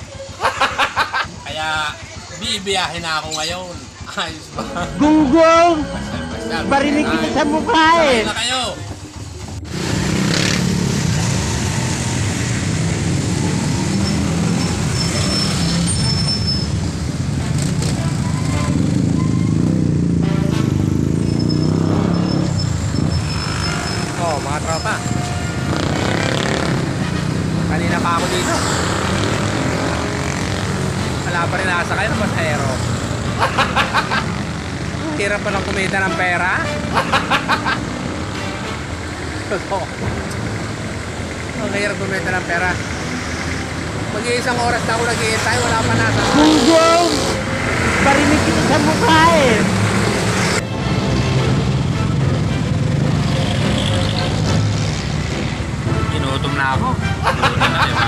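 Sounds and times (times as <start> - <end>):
motorcycle engine: 0.0 - 36.2, 36.8 - 56.0
street traffic: 0.0 - 58.0
man talking: 1.4 - 8.9.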